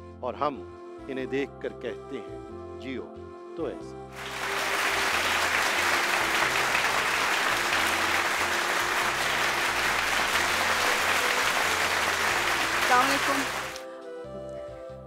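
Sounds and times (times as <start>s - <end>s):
studio audience applauding: 4.2s - 13.8s.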